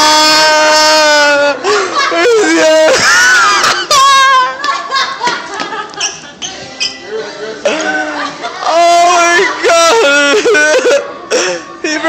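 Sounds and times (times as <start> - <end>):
person yodeling without words: 0.0 - 4.6, 7.7 - 11.1.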